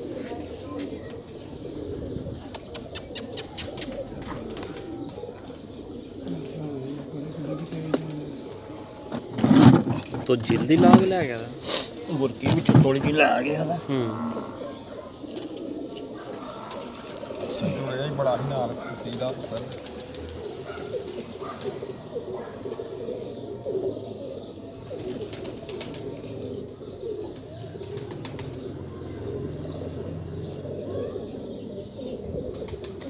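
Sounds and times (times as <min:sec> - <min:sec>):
low voices murmuring: 0:00.0 - 0:33.0
pigeons cooing: 0:00.0 - 0:33.0.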